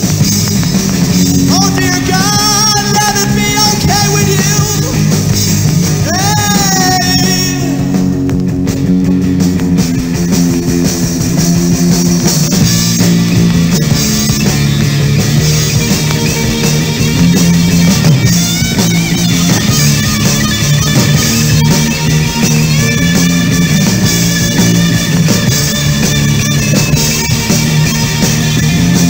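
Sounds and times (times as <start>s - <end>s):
rock band instrumental: 0.0s - 29.0s.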